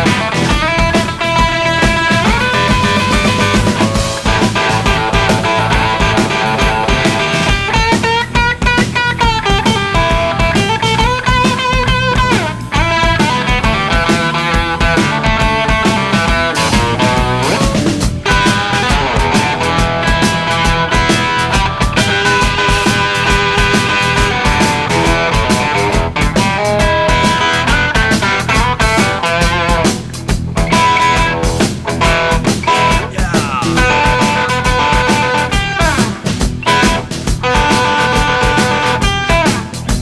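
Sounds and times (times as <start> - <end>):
drums: 0.0 - 40.0
electric guitar lead: 0.0 - 40.0.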